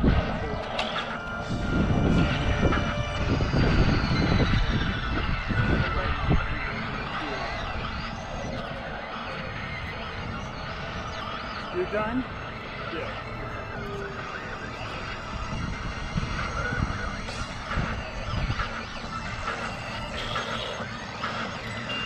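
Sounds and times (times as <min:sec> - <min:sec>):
low rumble: 0:00.0 - 0:21.6.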